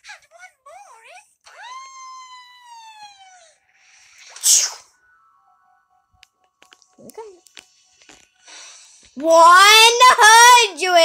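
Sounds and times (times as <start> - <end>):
rising and falling held tone: 2.8 - 7.5
short loud hissing burst: 4.3 - 4.9.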